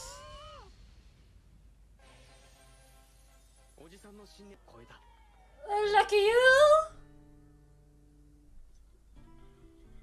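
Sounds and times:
high-pitched meow-like cry: 0.0s - 0.7s.

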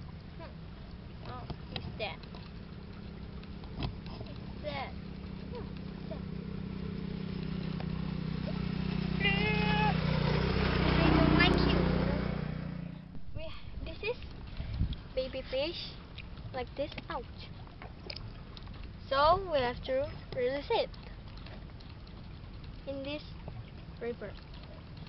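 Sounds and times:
passing vehicle engine drone: 5.1s - 13.3s.

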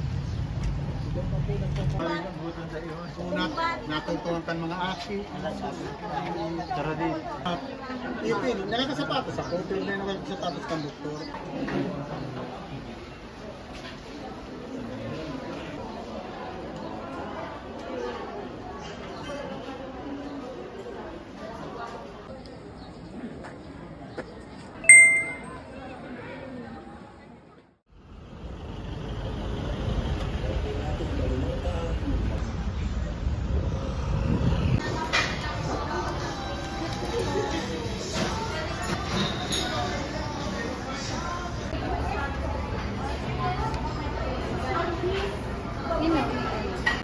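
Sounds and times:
road vehicles rumbling past: 0.0s - 2.8s, 27.9s - 35.9s
people chattering: 1.1s - 27.8s, 34.7s - 47.0s.

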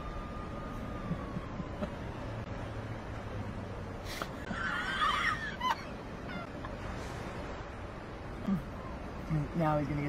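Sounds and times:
vehicle tyre noise passing: 0.0s - 10.0s
person squealing laugh: 4.4s - 6.6s.

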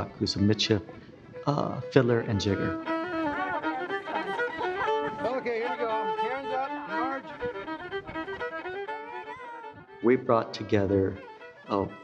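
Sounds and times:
fiddle playing quick tune: 0.0s - 12.0s.

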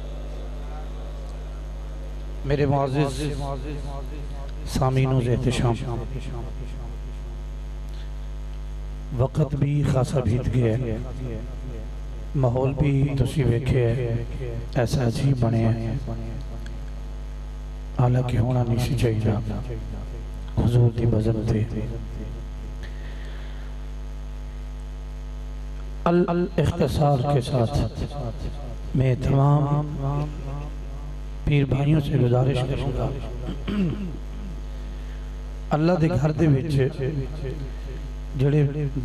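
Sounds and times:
electrical mains hum: 0.0s - 39.0s.

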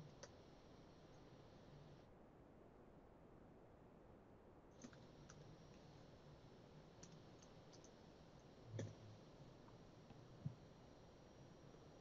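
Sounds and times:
computer keyboard and mouse clicks: 4.8s - 5.8s, 7.0s - 8.0s, 8.7s - 9.0s.

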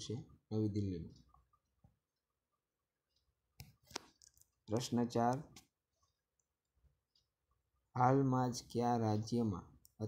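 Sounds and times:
man speaking: 0.0s - 1.3s, 4.6s - 5.6s, 7.9s - 10.0s.

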